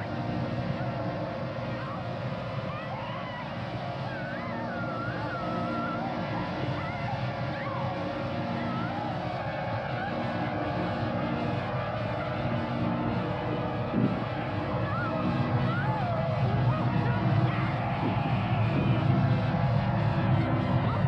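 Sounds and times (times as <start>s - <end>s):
rumbling drone: 12.9s - 14.8s.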